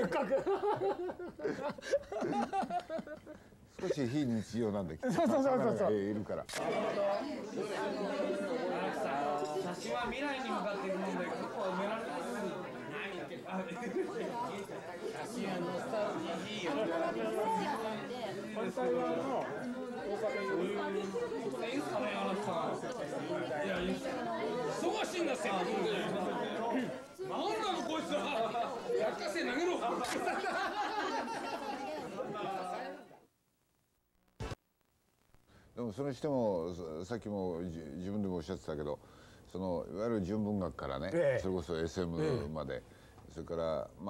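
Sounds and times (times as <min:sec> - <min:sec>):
laughter: 0:00.0 - 0:03.4, 0:05.0 - 0:05.8, 0:29.8 - 0:32.6
people chattering: 0:00.0 - 0:33.3, 0:35.8 - 0:44.0
people talking loudly: 0:03.9 - 0:33.2.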